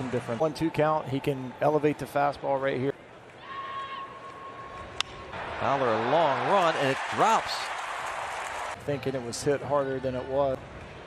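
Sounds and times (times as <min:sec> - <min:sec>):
faint ballpark crowd: 0:00.0 - 0:11.0.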